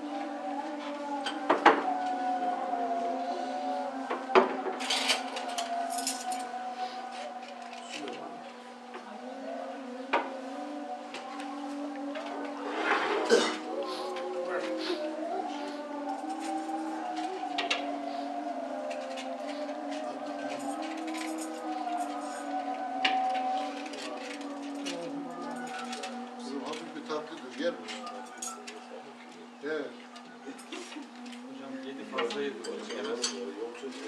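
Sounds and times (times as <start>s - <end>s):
murmur of voices: 0.0s - 34.0s.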